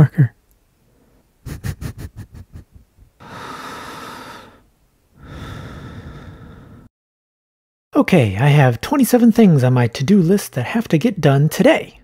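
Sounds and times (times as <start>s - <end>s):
person snickering: 1.4s - 3.5s.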